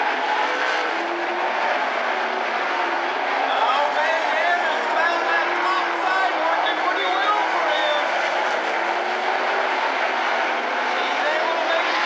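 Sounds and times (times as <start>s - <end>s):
race car engines running hard: 0.0s - 12.0s.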